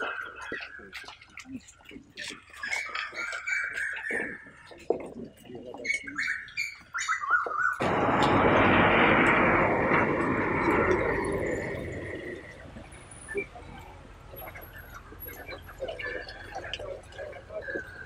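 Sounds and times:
birds chirping: 0.0 - 18.0
loud rush of noise: 7.8 - 14.0.

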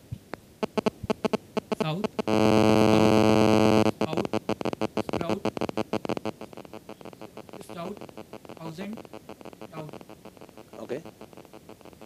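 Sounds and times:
rapid crackling clicks: 0.2 - 12.0
loud low-pitched buzz: 0.6 - 12.0.

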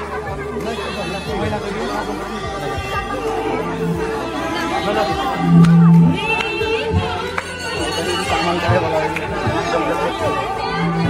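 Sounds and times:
crowd chatter: 0.0 - 11.0
devotional music and singing: 0.0 - 11.0.

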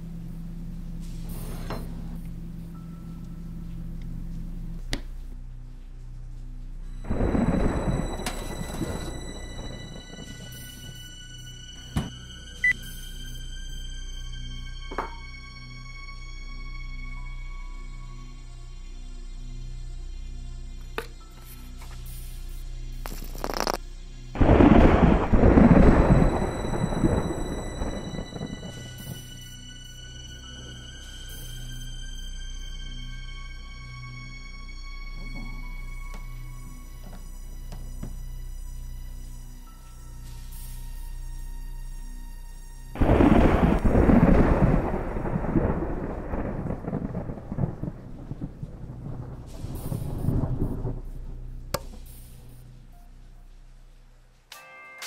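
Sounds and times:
faint music: 0.0 - 55.0
thunder rumbling: 6.9 - 12.8, 24.4 - 29.6, 43.0 - 52.6.

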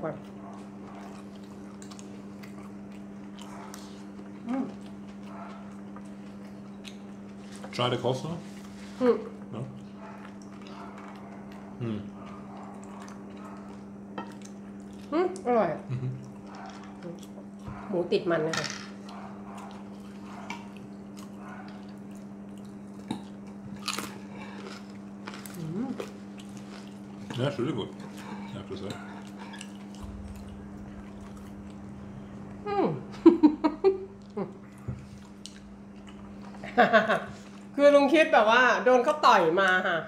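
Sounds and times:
steady low hum: 0.0 - 40.0
chewing: 0.2 - 17.9, 19.0 - 32.6, 34.2 - 36.6.

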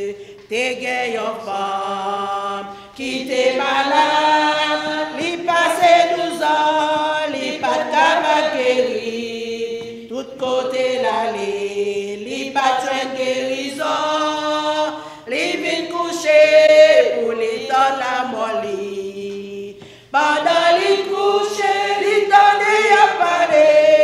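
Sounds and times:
women singing a hymn: 0.0 - 24.0.

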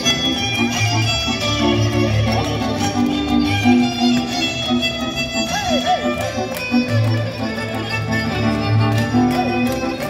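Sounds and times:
folk dance music with violin: 0.0 - 10.0.

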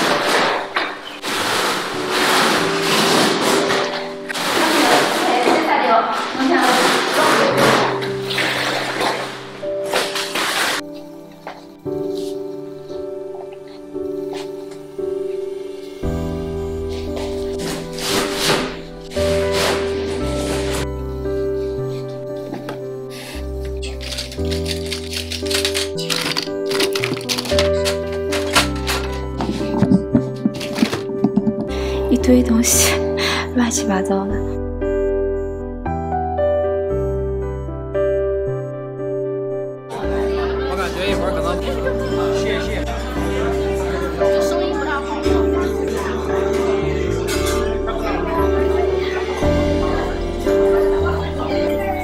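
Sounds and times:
wallpaper tearing and crackling: 0.0 - 10.9, 23.8 - 29.3
background music with held notes: 0.0 - 52.0
metal paint tubes clattering: 23.7 - 31.7
background music with singing: 39.4 - 52.0.

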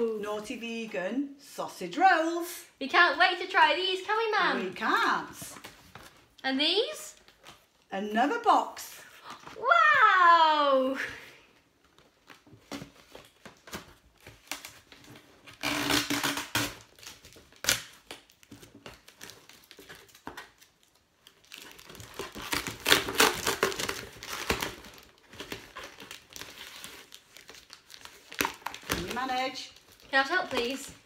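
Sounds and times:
cardboard crinkling and tearing: 12.0 - 31.0.

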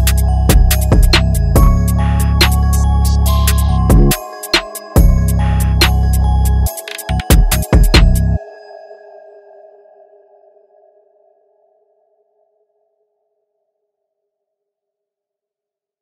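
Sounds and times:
gliding bass hits: 0.6 - 4.2
hi-hat clicks: 2.3 - 5.0.

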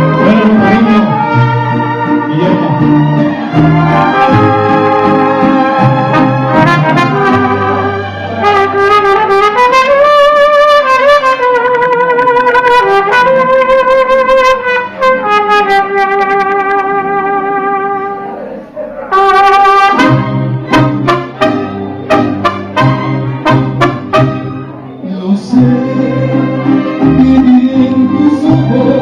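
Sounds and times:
violins: 0.0 - 9.1
strummed guitars and bass: 0.0 - 17.2, 19.8 - 29.0
trumpets holding long notes: 0.0 - 18.3, 19.1 - 24.9.

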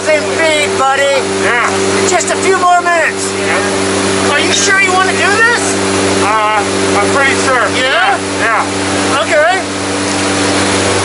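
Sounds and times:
propeller engine drone: 0.0 - 11.0.

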